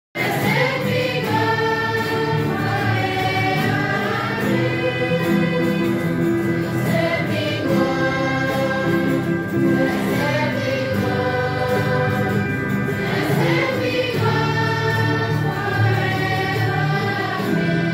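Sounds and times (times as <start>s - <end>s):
choir singing a hymn: 0.2s - 17.9s.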